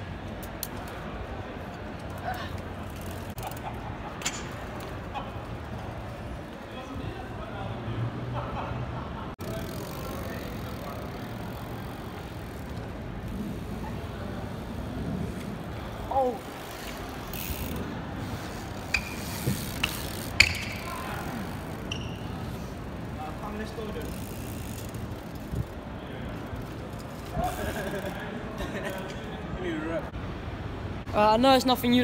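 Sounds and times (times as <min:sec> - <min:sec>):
bicycles riding on paving: 0:00.0 - 0:30.1
outdoor background noise: 0:00.0 - 0:32.0.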